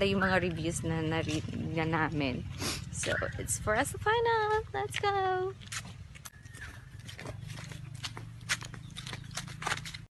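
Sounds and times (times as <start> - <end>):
footsteps: 0.1 - 10.0.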